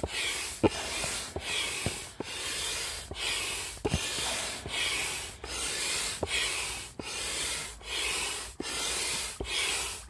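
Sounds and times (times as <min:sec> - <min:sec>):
hand pump air rushing: 0:00.0 - 0:10.0.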